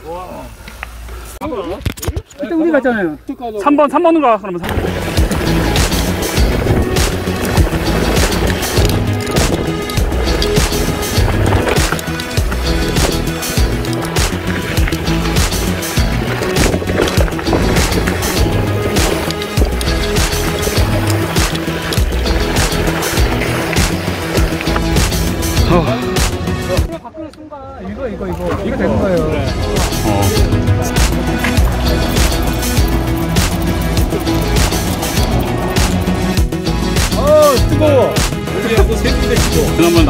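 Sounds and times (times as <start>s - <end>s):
mountain bike rattling on dirt trail: 4.6s - 25.8s, 28.3s - 36.6s
background music with steady beat: 4.7s - 27.0s, 29.1s - 40.0s.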